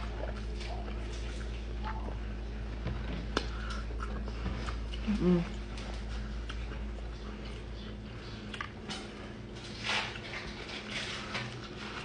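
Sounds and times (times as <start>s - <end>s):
person chewing: 3.3s - 12.0s.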